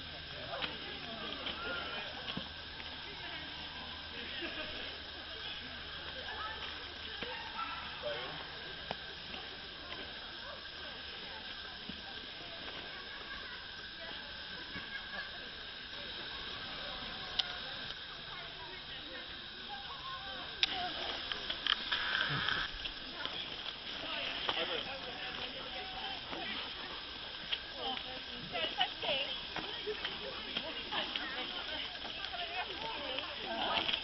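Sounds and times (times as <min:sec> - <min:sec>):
distant voices: 0:00.0 - 0:34.0
steady hiss: 0:00.0 - 0:34.0.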